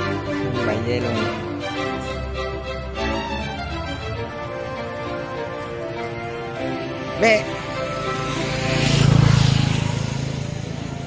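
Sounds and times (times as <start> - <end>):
background music: 0.0 - 9.8
vehicle engine passing: 0.0 - 11.0.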